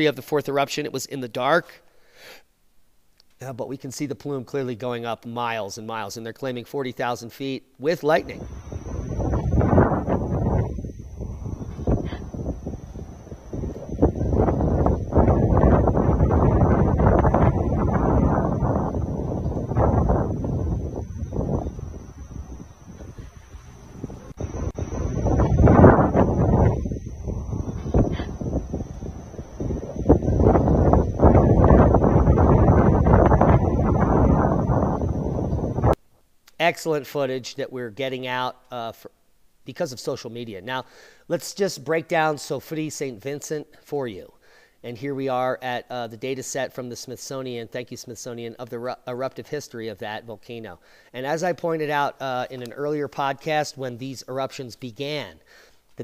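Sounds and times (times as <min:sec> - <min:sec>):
thin steady high tone: 0:08.1 - 0:35.9
wind buffeting microphone: 0:08.2 - 0:36.0.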